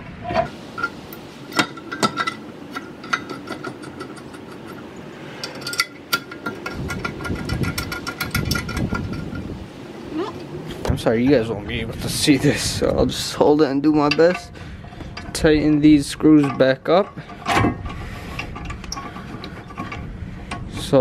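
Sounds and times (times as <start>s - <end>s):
metal clinks and knocks: 0.3s - 9.6s, 13.9s - 21.0s.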